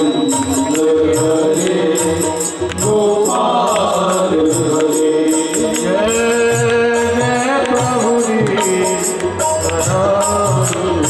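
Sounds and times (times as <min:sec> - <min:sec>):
hand drum beat: 0:00.0 - 0:11.0
harmonium: 0:00.0 - 0:11.0
jingling percussion: 0:00.0 - 0:11.0
men singing in unison: 0:00.0 - 0:11.0.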